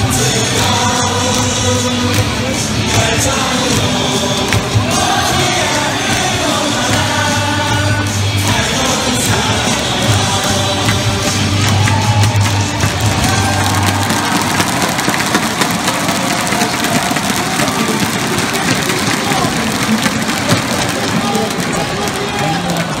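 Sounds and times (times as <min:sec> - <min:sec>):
cheer song over loudspeakers: 0:00.0 - 0:23.0
crowd singing and shouting: 0:00.0 - 0:23.0.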